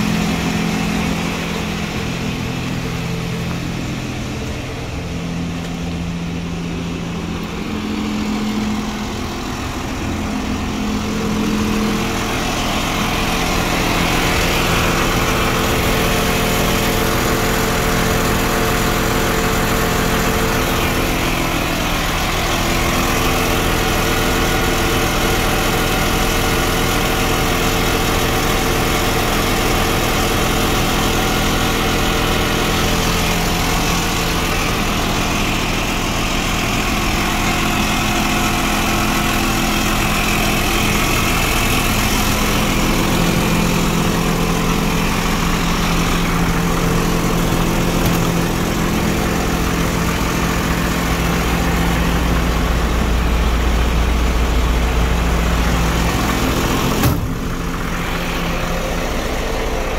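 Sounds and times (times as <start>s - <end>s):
truck engine idling: 0.0s - 59.9s.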